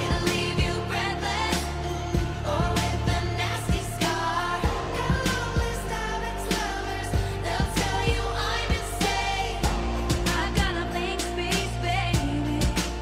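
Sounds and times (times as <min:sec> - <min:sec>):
steady drum beat: 0:00.0 - 0:13.0
woman singing: 0:00.0 - 0:13.0.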